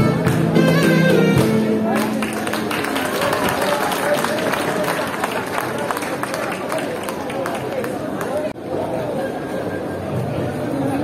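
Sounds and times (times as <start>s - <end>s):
crowd chatter: 0.0s - 11.0s
crowd clapping along: 0.2s - 8.6s.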